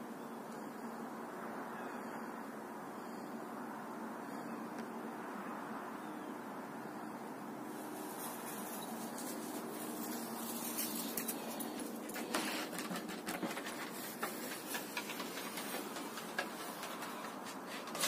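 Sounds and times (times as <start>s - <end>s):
outdoor background noise: 0.0s - 18.0s
crackling rustles: 7.6s - 18.0s.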